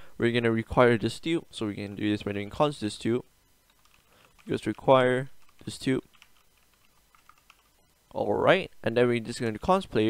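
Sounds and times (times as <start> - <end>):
faint keyboard typing: 3.7 - 8.2.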